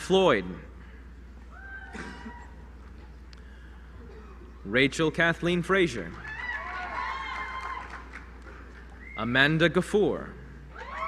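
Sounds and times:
low steady hum: 0:00.0 - 0:11.0
high-pitched whoop: 0:01.5 - 0:02.7, 0:06.2 - 0:08.1, 0:10.7 - 0:11.0.

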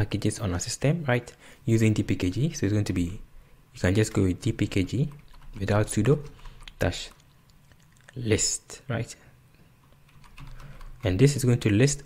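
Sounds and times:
computer keyboard keystrokes: 0:05.1 - 0:08.1, 0:09.8 - 0:11.1.

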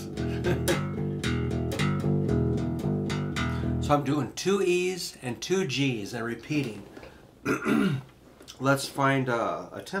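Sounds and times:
electric bass guitar riff: 0:00.0 - 0:04.0.

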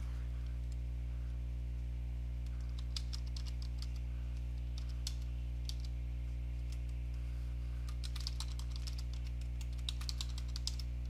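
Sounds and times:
low electrical hum: 0:00.0 - 0:11.0
typing on computer keyboard: 0:02.6 - 0:04.0, 0:07.9 - 0:10.9.

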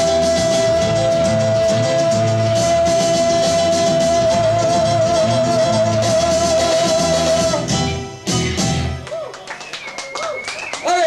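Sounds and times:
live rock band playing: 0:00.0 - 0:09.9.

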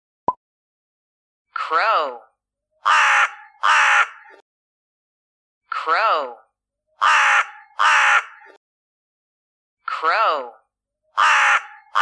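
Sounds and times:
crow cawing: 0:02.8 - 0:04.4, 0:07.0 - 0:08.6, 0:11.2 - 0:12.0.

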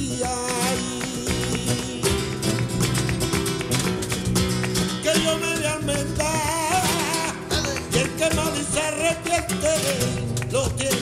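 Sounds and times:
acoustic guitar playing: 0:00.0 - 0:11.0
man singing flamenco: 0:00.0 - 0:11.0.

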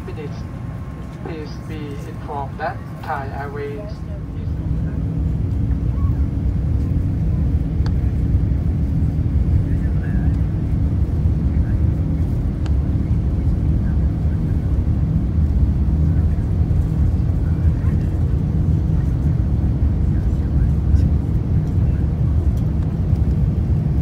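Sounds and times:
jet engines rumbling: 0:00.0 - 0:24.0.

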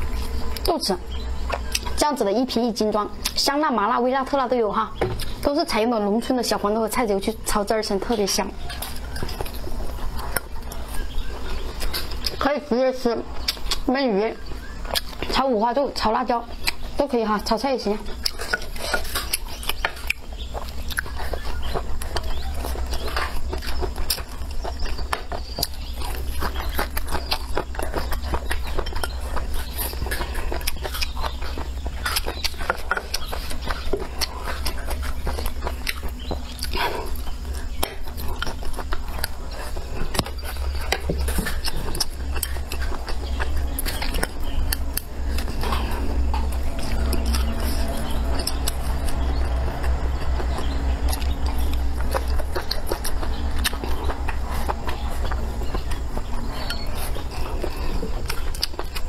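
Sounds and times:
chewing: 0:00.0 - 0:59.0
low steady hum: 0:00.0 - 0:59.0.

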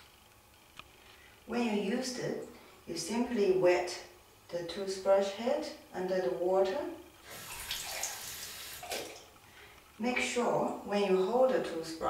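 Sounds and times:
tap water splashing into sink: 0:07.3 - 0:09.3.

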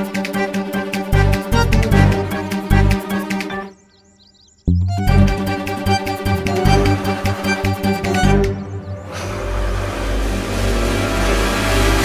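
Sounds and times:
low drone: 0:05.0 - 0:12.0
dense rushing noise: 0:09.1 - 0:12.0.

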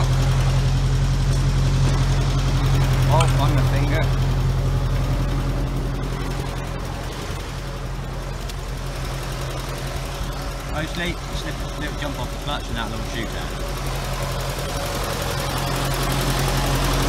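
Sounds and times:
tractor engine idling: 0:00.0 - 0:17.0.

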